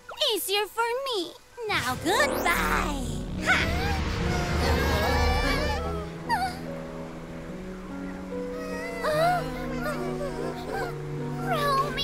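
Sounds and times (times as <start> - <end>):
cartoon low rumble: 1.8 - 6.8
dramatic background music: 1.8 - 12.0
high-pitched whimpering cry: 8.6 - 12.0.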